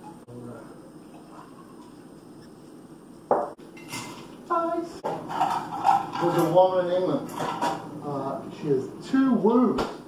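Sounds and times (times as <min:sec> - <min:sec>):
glassware clinking: 0:03.3 - 0:04.2.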